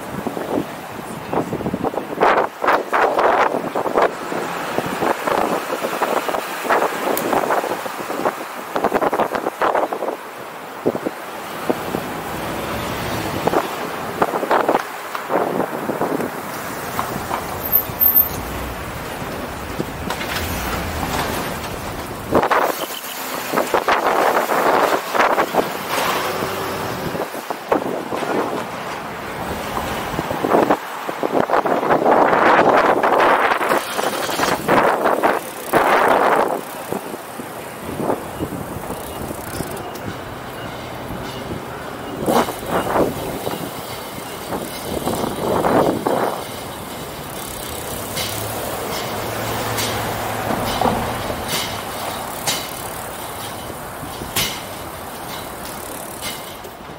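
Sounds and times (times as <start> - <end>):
steady road noise: 0.0 - 56.9
vehicles passing close by: 0.0 - 56.9.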